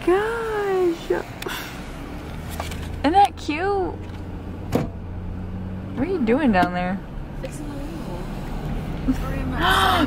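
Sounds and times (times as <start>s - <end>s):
car engine hum inside cabin: 0.0s - 10.0s.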